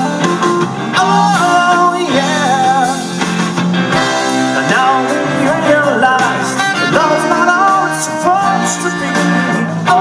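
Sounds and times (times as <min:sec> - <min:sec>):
drums: 0:00.0 - 0:10.0
electric bass: 0:00.0 - 0:10.0
electric guitar: 0:00.0 - 0:10.0
hammond organ: 0:00.0 - 0:10.0
sung melody: 0:00.0 - 0:10.0
trumpet and trombone: 0:06.7 - 0:10.0.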